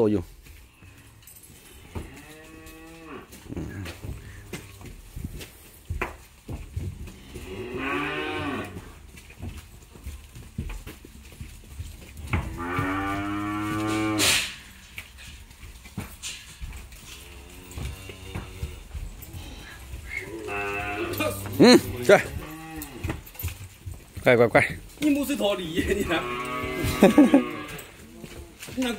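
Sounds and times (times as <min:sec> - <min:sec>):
young cattle mooing: 0:07.2 - 0:08.9, 0:12.5 - 0:14.6, 0:17.3 - 0:23.1, 0:26.1 - 0:27.8.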